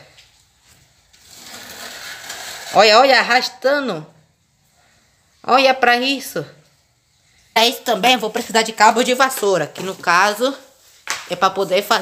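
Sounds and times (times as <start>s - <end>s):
cardboard box scraping on concrete: 1.1s - 3.2s.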